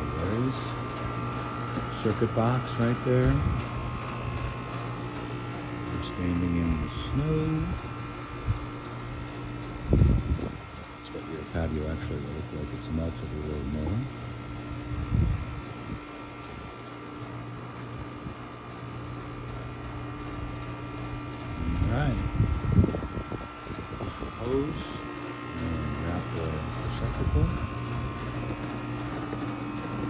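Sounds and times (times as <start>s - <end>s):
steady mechanical hum: 0.0s - 30.0s.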